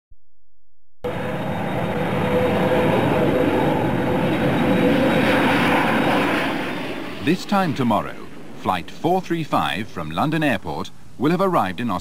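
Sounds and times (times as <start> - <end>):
jet airliner taking off: 1.1 - 12.0.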